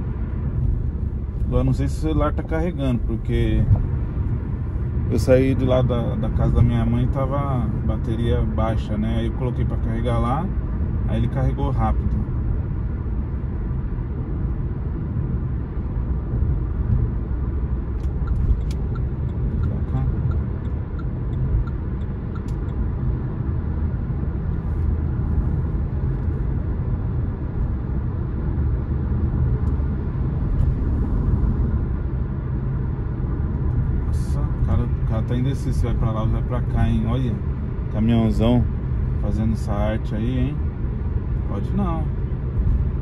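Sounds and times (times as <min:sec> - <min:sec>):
car tyres and engine rumble: 0:00.0 - 0:43.0.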